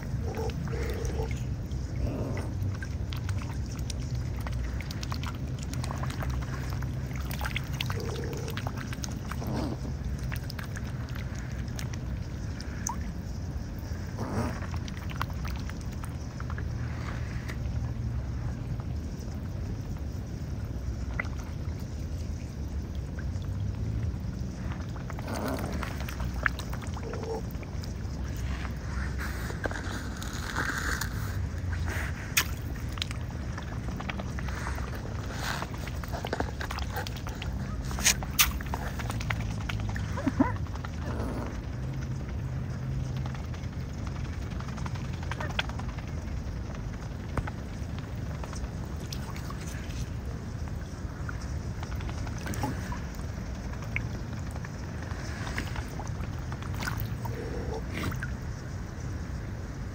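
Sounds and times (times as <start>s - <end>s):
swan dabbling in water: 0.0s - 19.7s, 20.5s - 43.7s, 47.1s - 58.9s
wind rumble on microphone: 0.0s - 59.9s.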